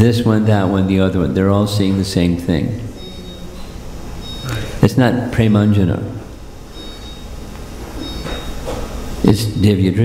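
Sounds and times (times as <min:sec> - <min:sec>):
low hum: 0:02.4 - 0:09.2.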